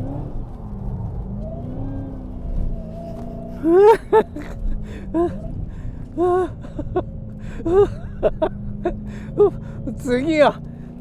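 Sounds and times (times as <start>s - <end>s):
car engine drone: 0.0s - 11.0s
person crying out: 3.6s - 5.5s, 6.2s - 9.6s
person gasping: 4.7s - 6.5s, 9.0s - 9.9s.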